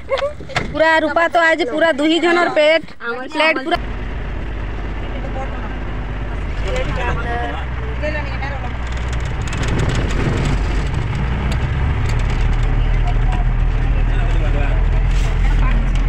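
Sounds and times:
bus engine drone: 0.0s - 16.0s
passengers talking: 0.0s - 16.0s
light rattling: 6.3s - 16.0s.

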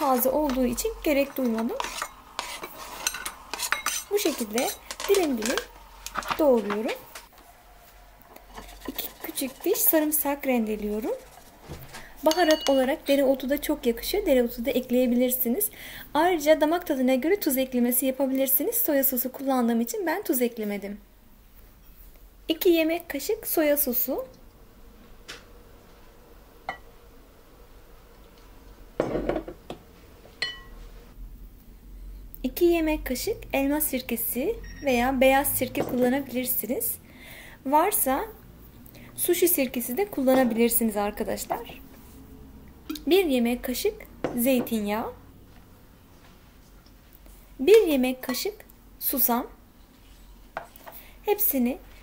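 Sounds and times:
utensils knocking and tapping: 0.0s - 7.3s, 12.3s - 13.2s
metal spoon clinking glass bowl: 0.4s - 5.6s, 12.3s - 13.2s, 30.4s - 30.8s.

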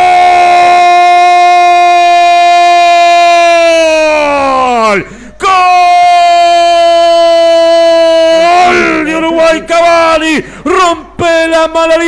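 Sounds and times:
commentator shouting goal cry: 0.0s - 12.0s.

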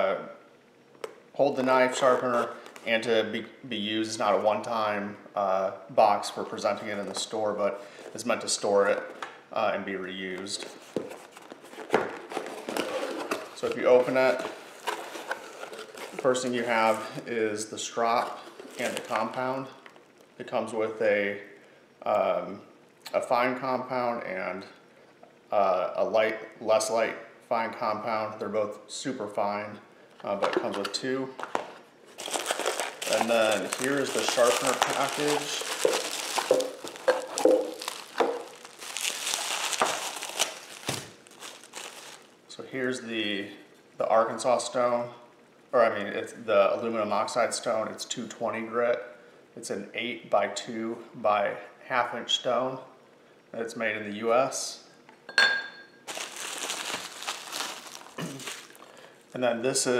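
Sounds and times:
bubble wrap crinkling: 10.6s - 17.2s, 18.4s - 19.4s, 32.1s - 42.3s, 56.1s - 59.4s.

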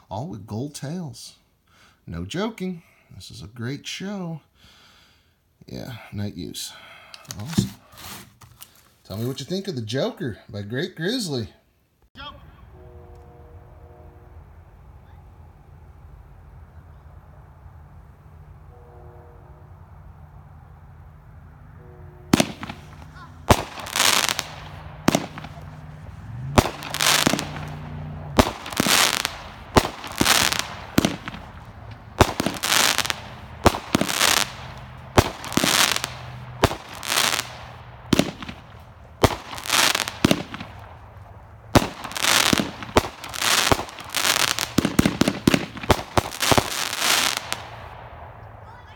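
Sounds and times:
firework launches and bursts: 22.3s - 41.0s, 41.8s - 48.0s
crackling firework stars: 22.3s - 48.6s.

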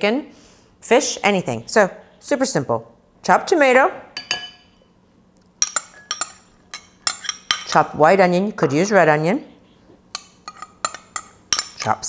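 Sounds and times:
cutlery clinking against a dish: 5.6s - 7.8s, 10.1s - 12.0s.

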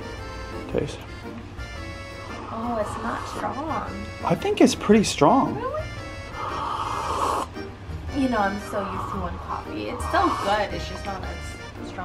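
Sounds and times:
background music: 0.0s - 12.0s
person slurping coffee: 6.5s - 7.5s.

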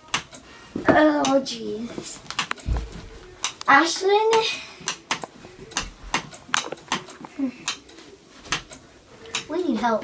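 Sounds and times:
sharp clicks and knocks: 4.3s - 9.5s.

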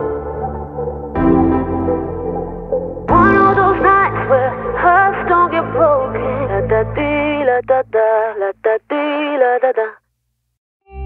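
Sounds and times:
dance-pop music: 3.1s - 10.0s
processed vocal singing: 3.1s - 10.0s.

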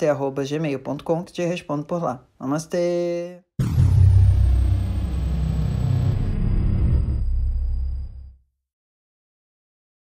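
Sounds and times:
high tone gliding downward: 3.6s - 8.3s
low rumble: 3.6s - 8.4s.

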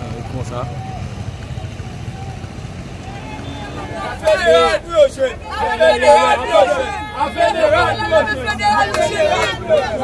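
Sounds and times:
faint voices: 0.0s - 10.0s
vehicles rumbling on road: 0.0s - 10.0s.

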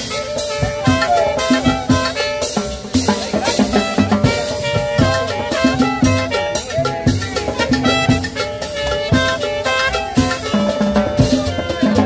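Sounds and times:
drum kit beat: 0.0s - 12.0s
held horn notes: 0.0s - 12.0s
latin dance band playing: 0.0s - 12.0s.

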